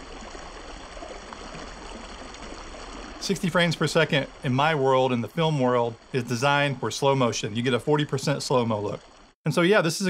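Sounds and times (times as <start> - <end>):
water cascading into a pool: 0.0 - 9.4.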